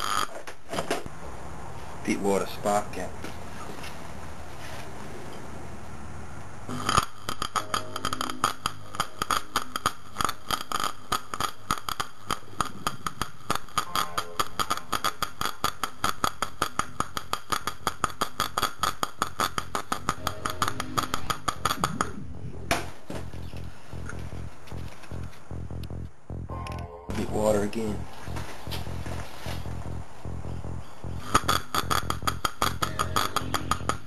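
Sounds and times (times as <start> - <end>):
steady low hum: 1.0 - 18.5, 19.1 - 34.0
electric arc crackling: 6.7 - 26.4, 27.2 - 34.0.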